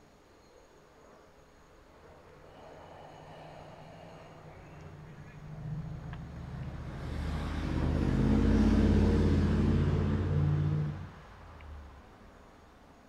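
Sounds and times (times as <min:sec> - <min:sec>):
vehicle engine passing by: 0:03.1 - 0:12.0.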